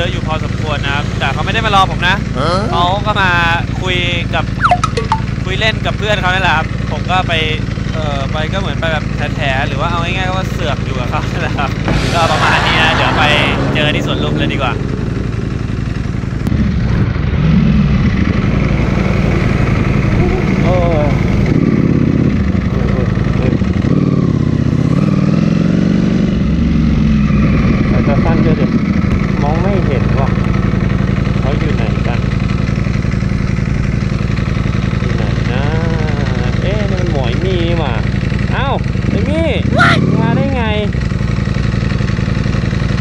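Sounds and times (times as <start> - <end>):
people's voices: 0.0 - 5.8, 9.4 - 15.1, 20.0 - 21.4, 35.1 - 38.0
motorcycle engines idling: 0.0 - 12.1, 13.3 - 43.0.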